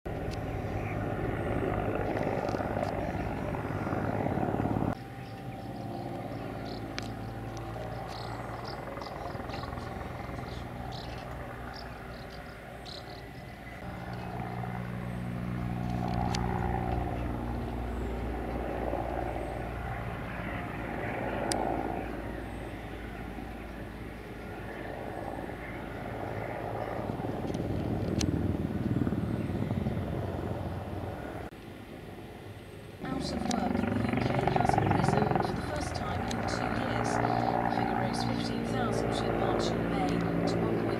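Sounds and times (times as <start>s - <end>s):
turboshaft engines running: 0.1s - 31.5s, 33.0s - 40.9s
helicopter rotor beating: 0.1s - 32.2s, 33.0s - 40.9s.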